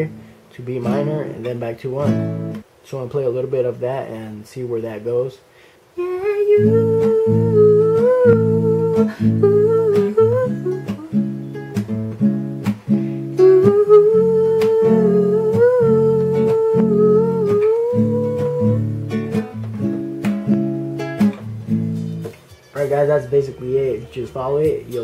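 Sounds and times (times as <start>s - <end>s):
acoustic guitar strumming chords: 0.0s - 3.7s, 6.0s - 25.0s
man humming: 6.0s - 11.2s, 13.4s - 18.8s.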